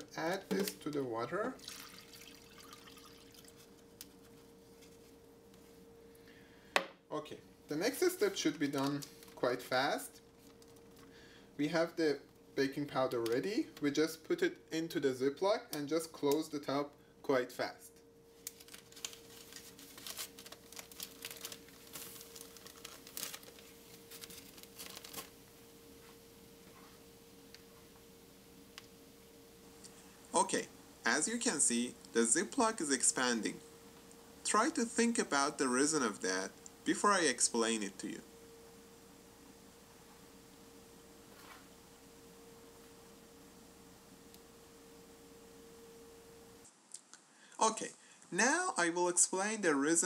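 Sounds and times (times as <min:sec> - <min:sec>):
faint steady hum: 0:00.0 - 0:50.0
liquid pouring into plastic bag: 0:01.5 - 0:03.8, 0:18.6 - 0:25.4.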